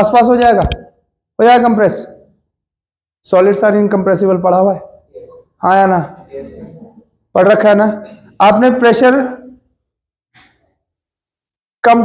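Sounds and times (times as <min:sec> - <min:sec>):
man speaking: 0:03.2 - 0:09.6.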